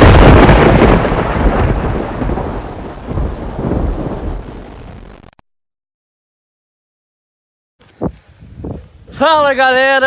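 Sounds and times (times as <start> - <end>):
thunder rumble: 0.0 - 5.3.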